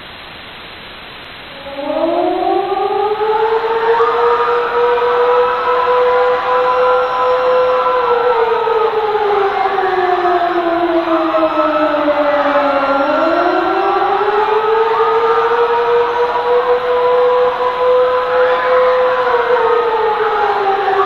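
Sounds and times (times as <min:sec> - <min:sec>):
background hiss: 0:00.0 - 0:21.0
air-raid siren wailing: 0:01.5 - 0:21.0.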